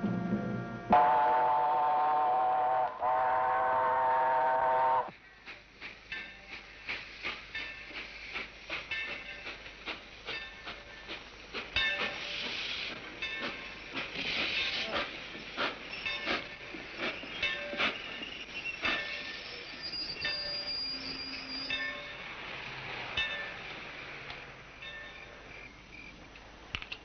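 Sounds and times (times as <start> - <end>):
steam train whistle blasts: 0.9 - 5.1
train rattling and clanking: 5.0 - 27.0.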